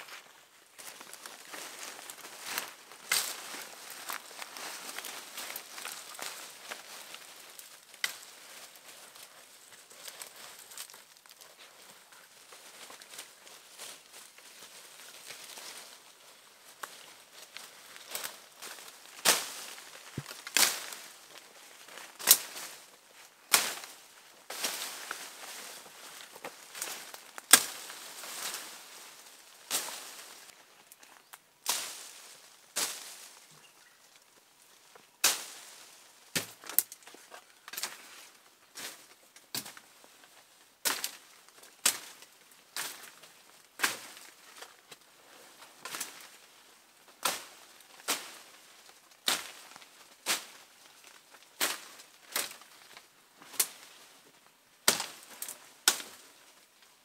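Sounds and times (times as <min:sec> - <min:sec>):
leaves rustling: 0:00.0 - 0:57.0
twigs snapping: 0:00.8 - 0:08.3, 0:16.8 - 0:22.6, 0:26.1 - 0:28.7, 0:36.4 - 0:38.0, 0:54.8 - 0:56.2.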